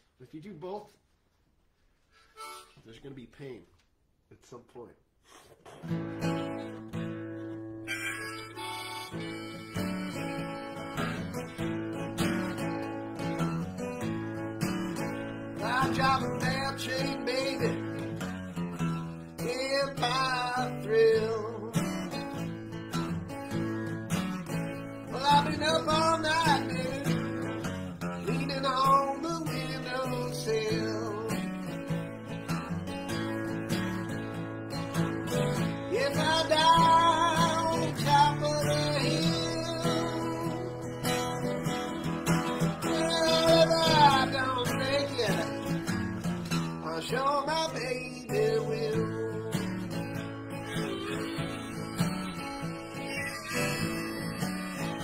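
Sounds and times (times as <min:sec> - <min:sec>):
harmonica melody: 0:02.0 - 0:03.0, 0:06.2 - 0:21.5, 0:22.4 - 0:31.2, 0:33.1 - 0:45.4, 0:48.4 - 0:55.0
acoustic guitar strumming: 0:05.3 - 0:55.0.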